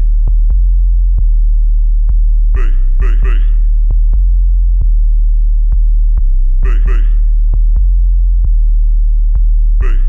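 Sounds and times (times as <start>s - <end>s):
sustained sub-bass tone: 0.0s - 10.0s.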